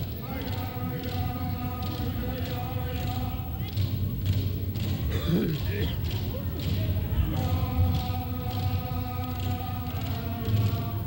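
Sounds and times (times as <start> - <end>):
voices singing long note: 0.0 - 4.2, 4.8 - 11.0.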